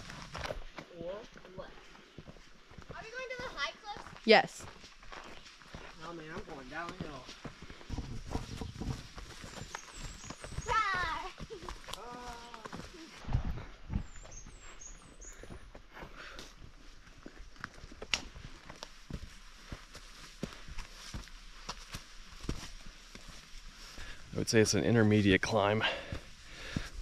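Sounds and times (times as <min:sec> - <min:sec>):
footsteps on dirt trail: 0:00.0 - 0:27.0
faint bird chirps: 0:13.9 - 0:15.6.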